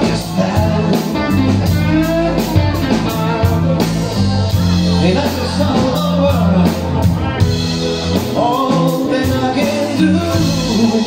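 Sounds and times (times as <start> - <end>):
bass guitar: 0.0 - 11.0
drums: 0.0 - 11.0
electric guitar lead with bent notes: 0.0 - 11.0
keyboard: 0.0 - 11.0.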